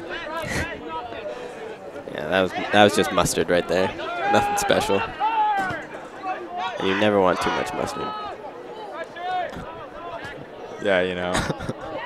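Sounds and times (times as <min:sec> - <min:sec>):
sports commentator talking: 0:00.0 - 0:12.0.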